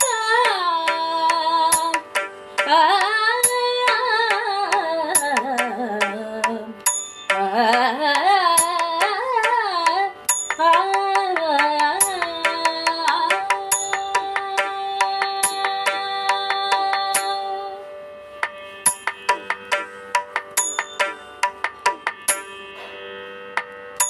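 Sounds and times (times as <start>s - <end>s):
sharp percussion strokes: 0.0s - 17.5s, 18.4s - 23.7s
ornamented melodic line: 0.0s - 24.0s.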